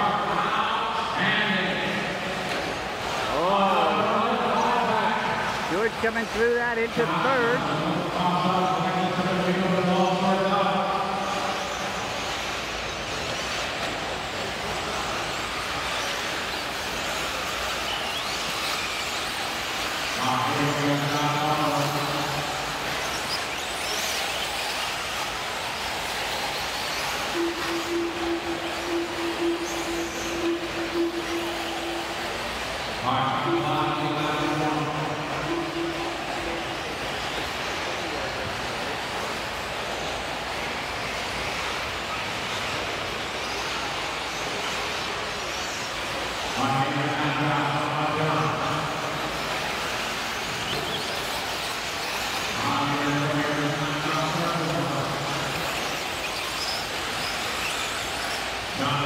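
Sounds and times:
announcer's voice: 0.0s - 2.3s, 3.3s - 11.6s, 20.2s - 22.5s, 27.4s - 32.2s, 33.0s - 36.9s, 46.6s - 49.2s, 52.6s - 55.3s
electric rc cars racing: 0.0s - 59.0s.

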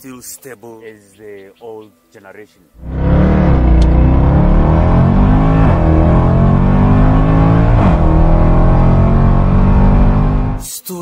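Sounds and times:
car engine accelerating hard: 2.8s - 10.6s.

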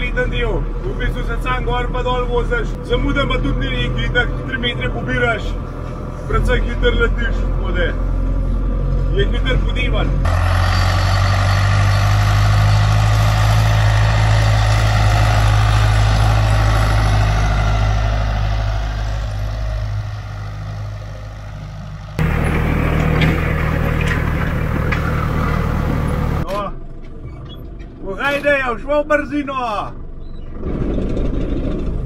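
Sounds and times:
tractor diesel engine running: 0.0s - 32.0s.

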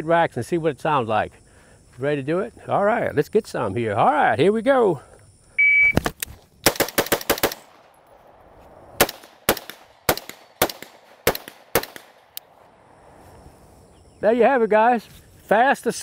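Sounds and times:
rifle shots: 6.6s - 8.0s, 8.9s - 12.4s.

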